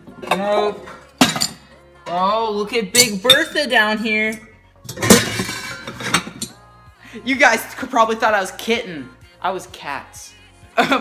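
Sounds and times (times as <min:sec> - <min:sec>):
mixing bowls clinking and scraping: 0:03.0 - 0:06.6.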